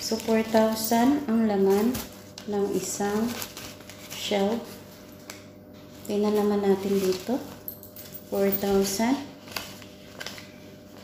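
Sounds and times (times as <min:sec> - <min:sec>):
paper banknotes rustling: 0:00.0 - 0:11.0.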